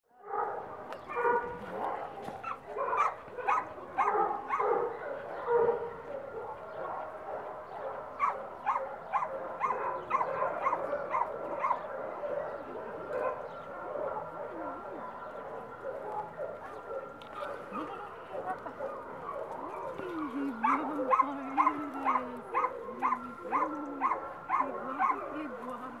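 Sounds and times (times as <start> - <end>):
dog barking: 0.2 - 25.6.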